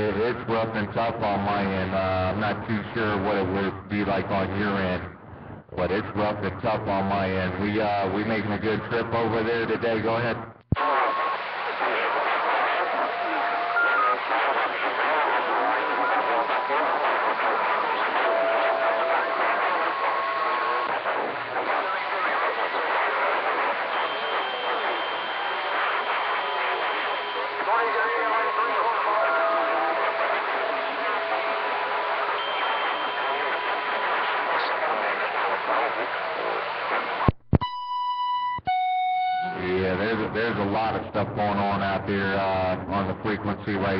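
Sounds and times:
radio static: 0:00.0 - 0:37.9, 0:39.4 - 0:43.9
garbled radio voices: 0:05.8 - 0:37.3
whistling carrier tones: 0:13.0 - 0:14.3, 0:23.8 - 0:31.6, 0:32.2 - 0:34.0.

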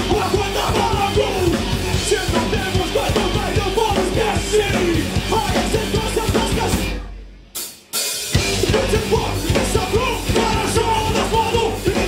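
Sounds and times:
rock band playing loud: 0:00.0 - 0:12.0.

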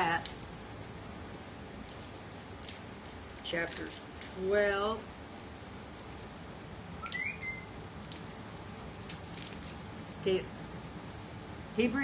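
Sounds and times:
pages rustling: 0:01.8 - 0:04.1, 0:09.0 - 0:10.2
high-pitched rising chirp: 0:07.0 - 0:07.8.

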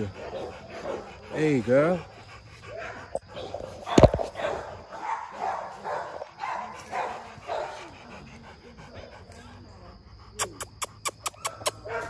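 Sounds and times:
dog panting: 0:00.0 - 0:12.0.

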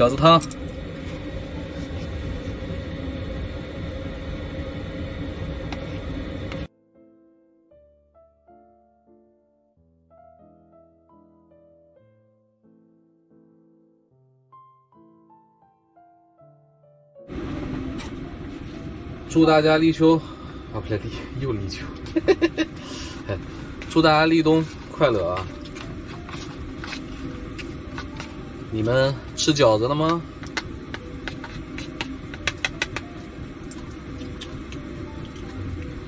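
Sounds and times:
piano background music: 0:00.0 - 0:03.3, 0:06.6 - 0:36.0
constant hum: 0:00.0 - 0:06.7, 0:17.3 - 0:36.0
low rumble: 0:00.0 - 0:06.7, 0:17.3 - 0:29.4
rushing room noise: 0:00.0 - 0:06.7, 0:17.3 - 0:36.0.

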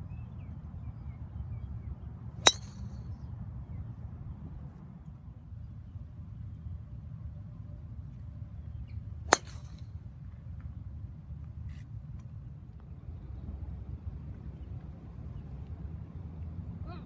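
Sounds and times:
golf club striking ball: 0:02.4 - 0:03.0, 0:09.3 - 0:09.9.

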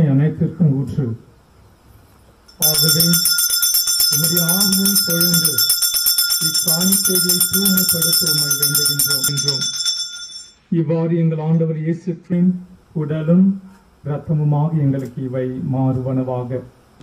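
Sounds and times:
altar bells jingling: 0:02.5 - 0:10.6
man praying: 0:02.6 - 0:10.0.

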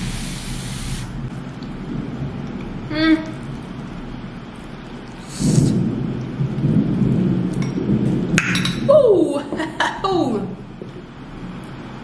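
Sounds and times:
steady rain: 0:00.0 - 0:12.0
thunder rumbling: 0:01.0 - 0:12.0.

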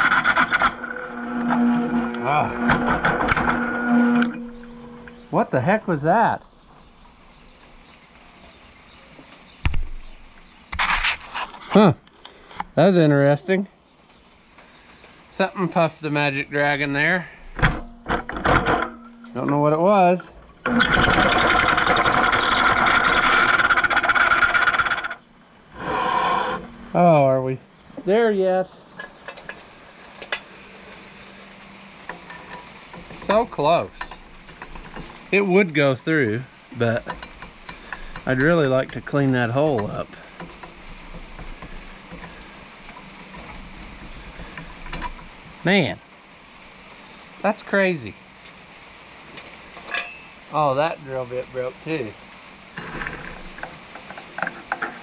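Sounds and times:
electric drill cutting steel: 0:00.0 - 0:05.2, 0:20.7 - 0:26.7
steady background hiss: 0:11.7 - 0:55.0
sharp metallic clink: 0:49.8 - 0:50.4.

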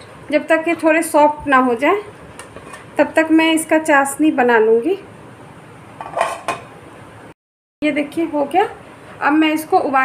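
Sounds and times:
pan clattering on stove: 0:06.0 - 0:06.7
pan scraping: 0:06.0 - 0:06.7.

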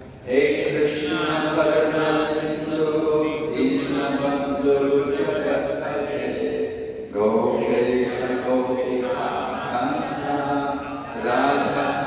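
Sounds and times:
man chanting prayers into microphone: 0:00.0 - 0:12.0.

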